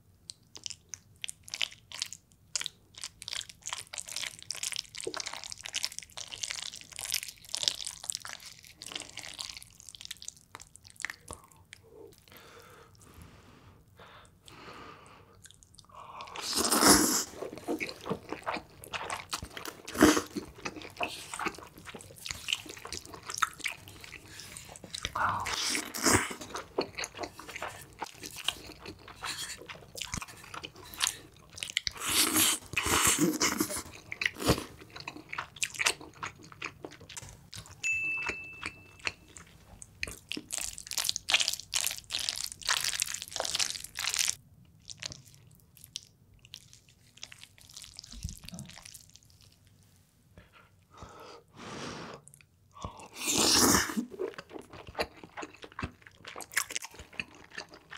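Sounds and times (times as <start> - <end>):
chewing: 15.3 - 49.7, 52.2 - 57.9.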